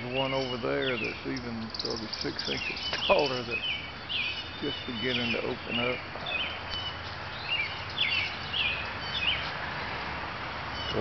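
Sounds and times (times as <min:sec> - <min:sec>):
birds chirping: 0:00.0 - 0:11.0
steady background hiss: 0:00.0 - 0:11.0.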